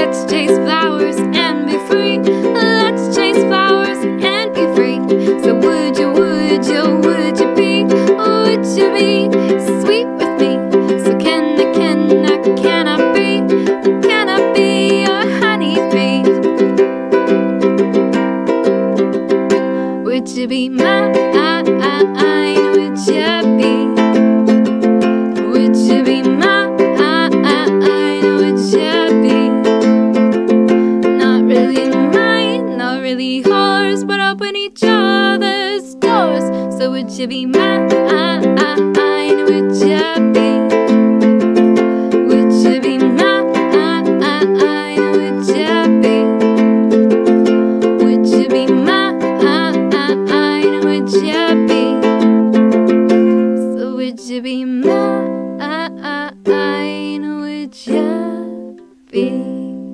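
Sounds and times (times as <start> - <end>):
woman singing: 0.0 - 16.8, 19.9 - 52.5, 53.4 - 59.9
ukulele strumming chords: 0.0 - 59.9.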